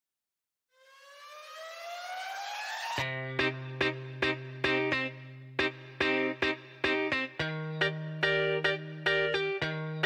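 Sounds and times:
rising electronic tone: 0:00.8 - 0:03.2.

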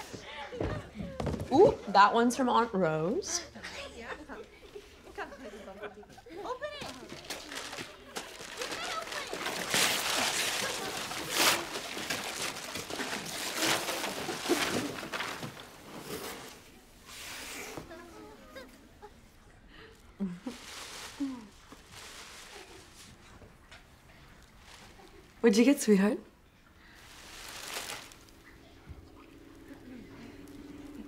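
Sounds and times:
wrapping paper ripping: 0:06.8 - 0:16.6, 0:20.2 - 0:23.3, 0:26.9 - 0:28.5.

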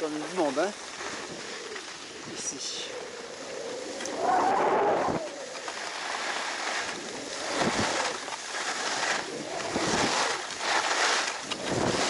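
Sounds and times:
skis scraping over snow: 0:00.0 - 0:12.0
wind on microphone: 0:01.1 - 0:12.0.

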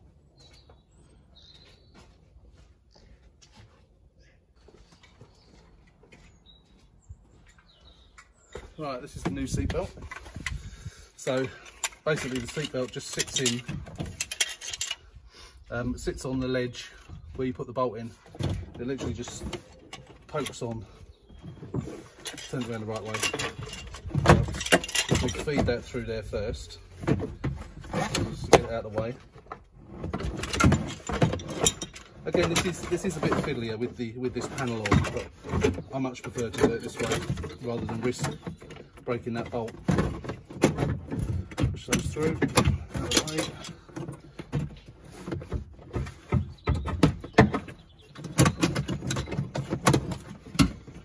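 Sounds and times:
distant bird chirps: 0:00.0 - 0:09.5, 0:14.4 - 0:23.8, 0:43.0 - 0:49.7
seatbelt webbing scraping and rustling: 0:27.7 - 0:28.9.

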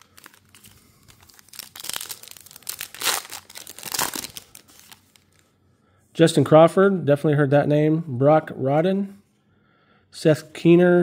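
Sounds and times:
card pack wrapper crinkling: 0:00.0 - 0:05.4.

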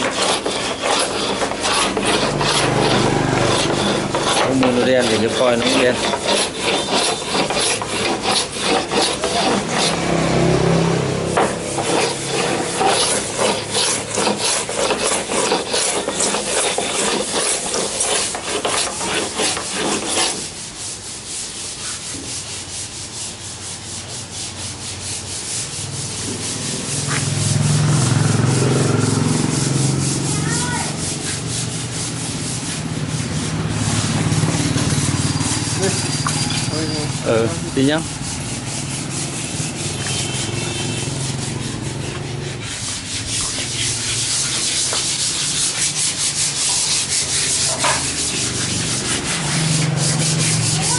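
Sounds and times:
hand sanding wood: 0:00.0 - 0:50.9.

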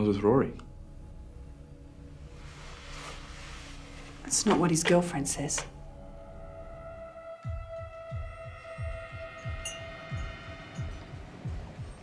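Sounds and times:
low pulsing throb: 0:05.8 - 0:12.0.

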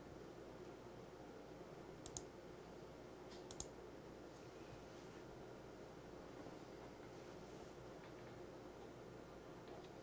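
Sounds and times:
computer mouse clicks: 0:02.0 - 0:02.3, 0:03.3 - 0:03.8.

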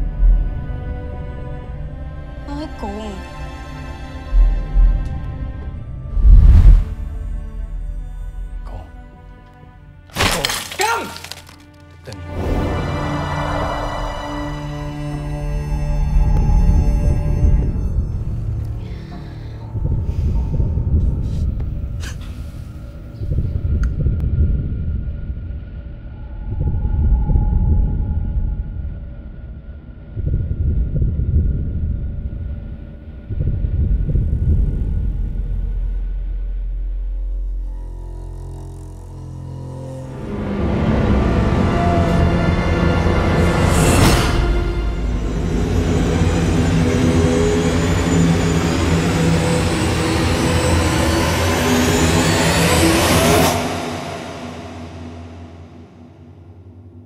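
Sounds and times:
low rumbling drone: 0:00.0 - 0:10.1, 0:11.4 - 0:57.0.

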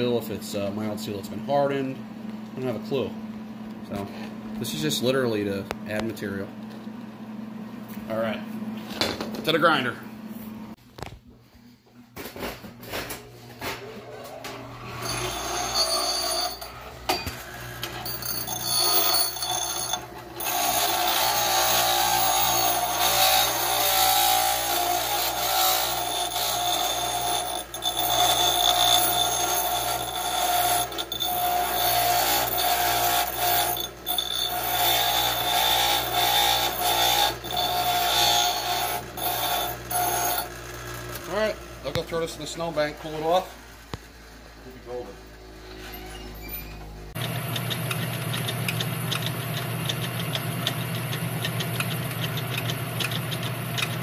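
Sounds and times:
bench grinder grinding steel: 0:14.4 - 0:54.0.

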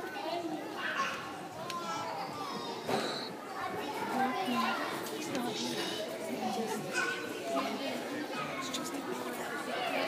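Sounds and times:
young children talking and calling: 0:00.0 - 0:10.0.

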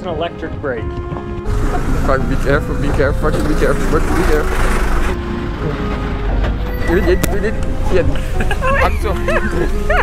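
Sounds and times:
people laughing and whooping: 0:08.2 - 0:10.0.

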